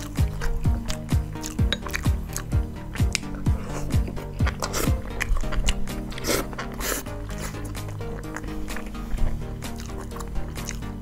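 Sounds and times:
background music with drum beat: 0:00.0 - 0:11.0
chewing and crunching food: 0:00.0 - 0:11.0.

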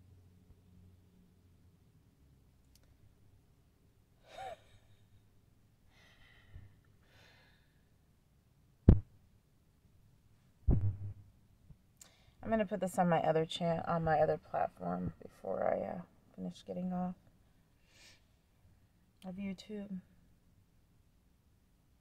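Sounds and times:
dull thump: 0:08.9 - 0:09.1, 0:10.7 - 0:11.3
sharp knock: 0:08.9 - 0:09.1, 0:10.7 - 0:11.2.

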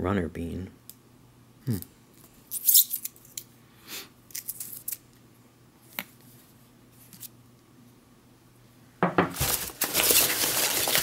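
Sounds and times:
metal food can handling noises: 0:09.4 - 0:11.0.

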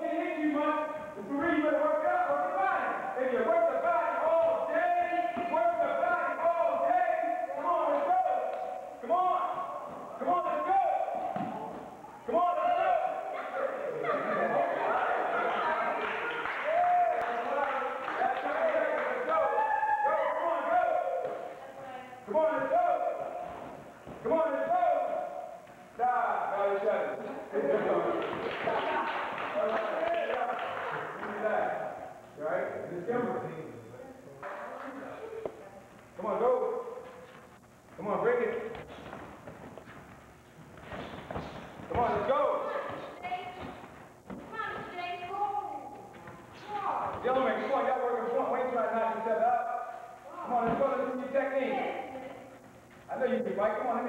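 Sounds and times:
man calling out: 0:12.1 - 0:14.1.

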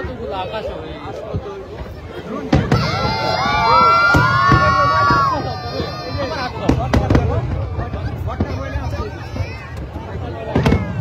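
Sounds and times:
fireworks bursting: 0:01.7 - 0:11.0
crowd cheering and shouting: 0:01.8 - 0:11.0.

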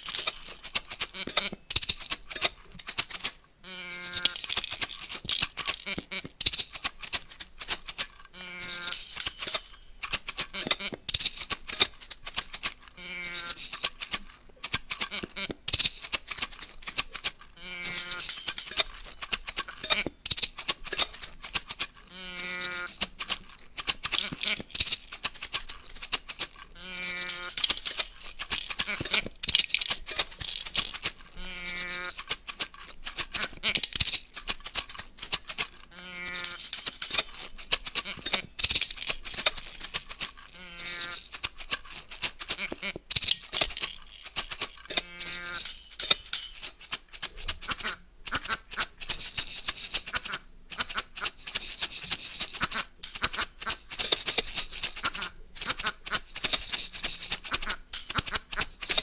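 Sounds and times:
hand shakers rattling: 0:00.0 - 0:59.0.

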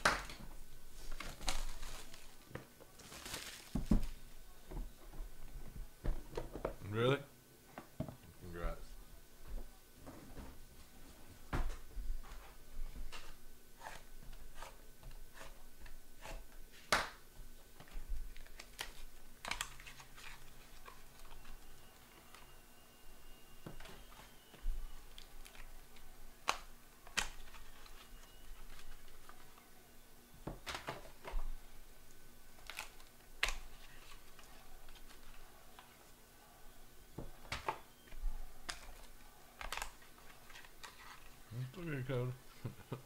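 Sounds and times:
cards being handled and opened: 0:01.0 - 0:04.2, 0:17.8 - 0:22.6, 0:23.8 - 0:29.6, 0:32.6 - 0:36.0, 0:38.6 - 0:41.5.

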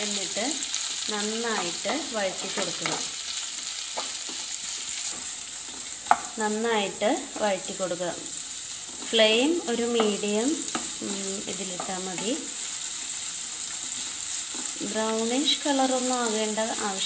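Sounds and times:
onions sizzling in hot oil: 0:00.0 - 0:17.0
wooden spatula stirring: 0:03.9 - 0:06.4, 0:13.4 - 0:17.0.

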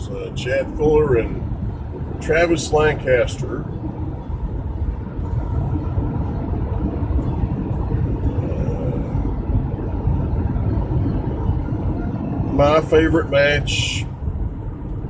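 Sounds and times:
car cabin rumble: 0:00.0 - 0:15.0.

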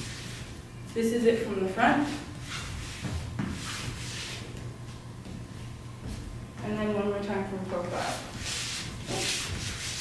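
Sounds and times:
steady low hum: 0:00.0 - 0:10.0
dance shoes scuffing on floor: 0:01.9 - 0:10.0.

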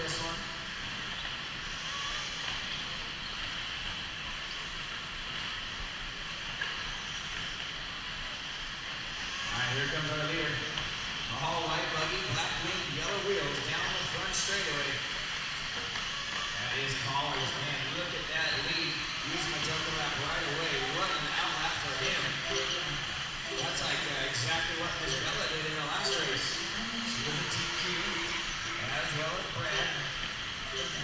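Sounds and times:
announcer over pa: 0:16.6 - 0:31.0.

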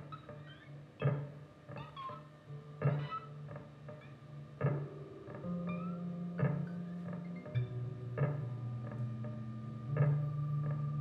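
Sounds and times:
drums: 0:00.0 - 0:11.0
plucked electric guitar notes: 0:01.0 - 0:11.0
low bass notes: 0:02.4 - 0:11.0.

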